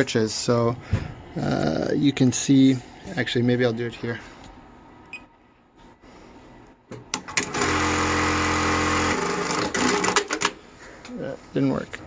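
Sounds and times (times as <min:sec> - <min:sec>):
sewing machine humming: 0:07.3 - 0:10.4.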